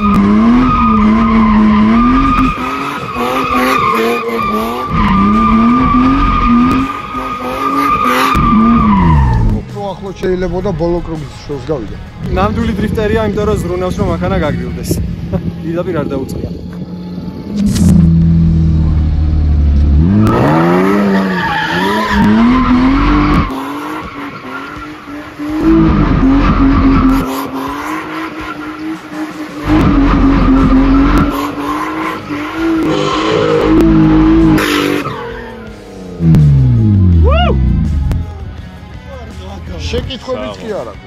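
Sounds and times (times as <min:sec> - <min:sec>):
tyre squeal: 0:00.0 - 0:09.6, 0:20.2 - 0:27.6
car engine revving: 0:00.0 - 0:09.8, 0:16.4 - 0:38.8.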